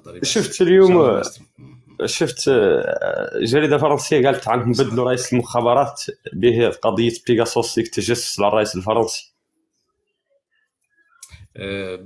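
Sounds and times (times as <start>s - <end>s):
man's voice: 0.0s - 9.3s, 11.2s - 12.0s.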